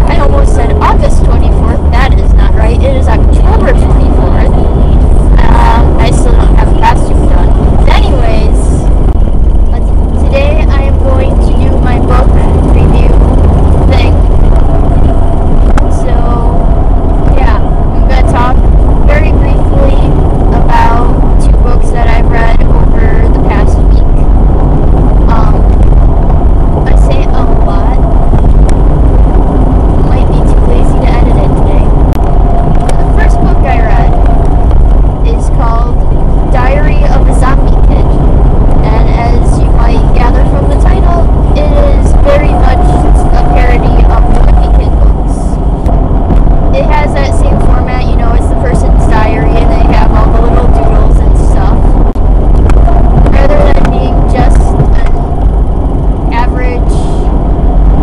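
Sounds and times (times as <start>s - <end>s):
person talking: 0.0s - 8.8s, 9.7s - 13.2s, 13.9s - 14.2s, 15.9s - 16.6s, 17.3s - 24.2s, 25.3s - 25.8s, 26.8s - 28.1s, 30.0s - 31.9s, 32.9s - 34.2s, 35.2s - 38.1s, 38.8s - 45.6s, 46.7s - 51.8s, 53.2s - 55.2s, 56.3s - 57.2s
car cabin road and engine rumble: 0.0s - 58.0s.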